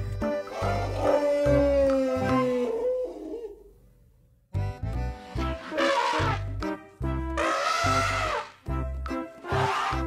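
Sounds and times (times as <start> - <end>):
elephant trumpeting: 5.2 - 6.5, 7.4 - 8.6, 9.4 - 10.0.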